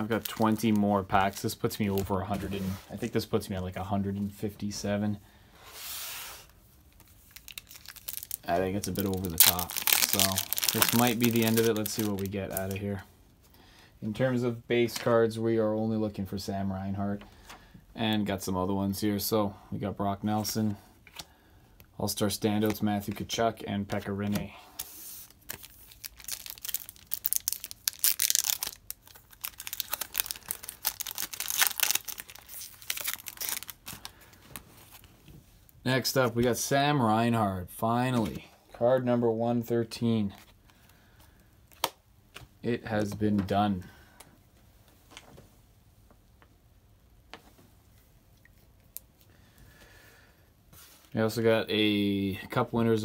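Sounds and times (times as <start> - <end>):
foil wrapper tearing and crinkling: 0.0 - 1.3, 7.2 - 12.8, 24.8 - 34.4
trading cards clicking and rustling: 7.0 - 12.8.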